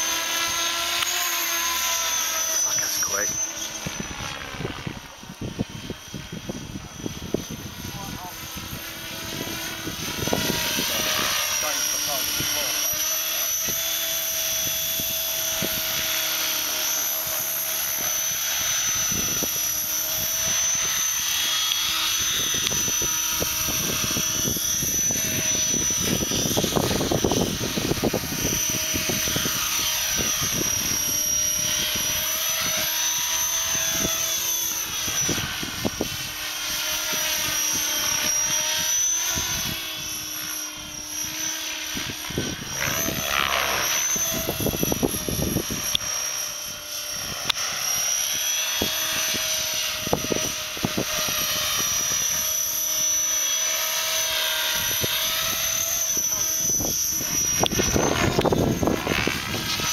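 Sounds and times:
rc helicopter motor whine: 0.0 - 59.9
rotor blades swishing: 0.0 - 59.9.

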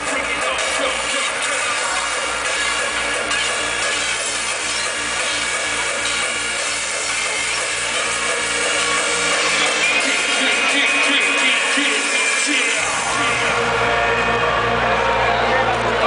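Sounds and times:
hardcore dance music: 0.0 - 16.0.

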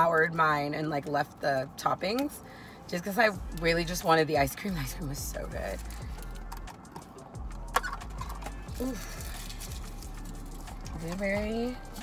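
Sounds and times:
low hum in car cabin: 0.0 - 12.0
paper wrapper tearing: 7.8 - 11.2
paper crinkling: 7.8 - 12.0.

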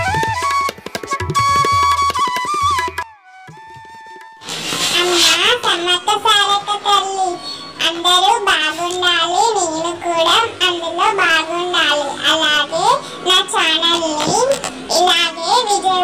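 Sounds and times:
percussion beat: 0.0 - 4.3.

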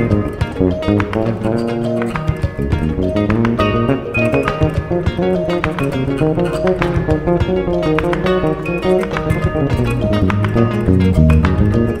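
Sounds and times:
bass guitar: 0.0 - 12.0
percussion: 0.0 - 12.0
plucked lute melody: 0.0 - 12.0.

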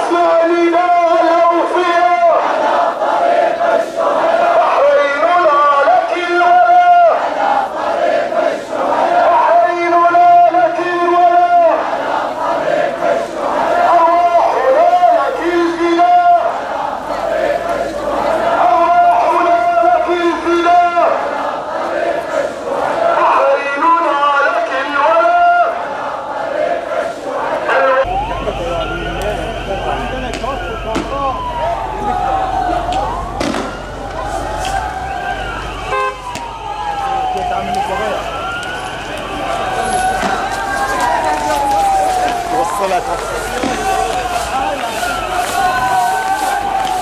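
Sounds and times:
crowd chanting slogans: 0.0 - 29.0, 29.6 - 47.0
police siren wailing: 13.3 - 21.3, 27.7 - 47.0.

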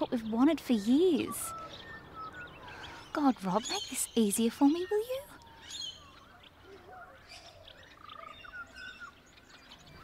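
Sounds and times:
birds chirping: 0.0 - 10.0
outdoor ambience: 0.0 - 10.0.

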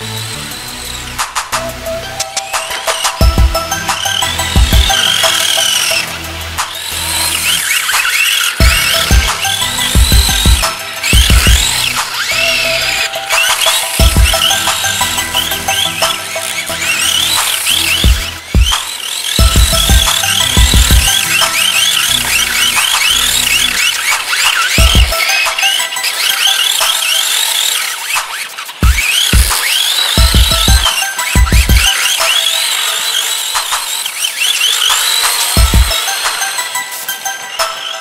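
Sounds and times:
rising high-pitched synth sweeps: 0.0 - 38.0
heavy bass hits: 8.6 - 11.9, 14.0 - 14.6, 19.4 - 21.2.

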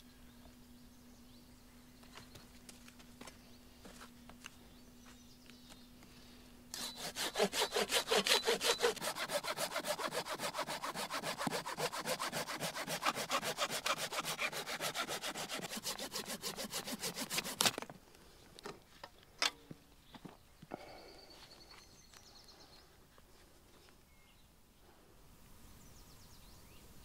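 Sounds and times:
hand saw cutting log: 6.7 - 17.9.

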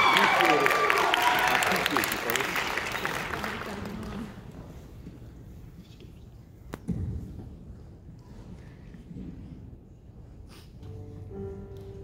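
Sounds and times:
audience applauding and cheering: 0.0 - 4.5.

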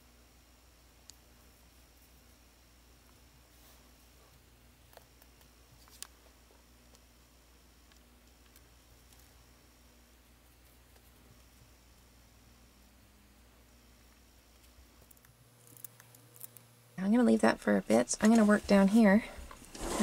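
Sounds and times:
faint room hum: 0.0 - 20.0.

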